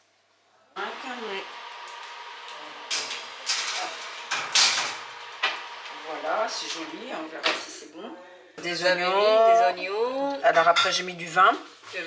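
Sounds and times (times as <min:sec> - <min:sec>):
steady hum: 0:00.8 - 0:08.0
metal cake pan scraping on oven rack: 0:00.9 - 0:07.9.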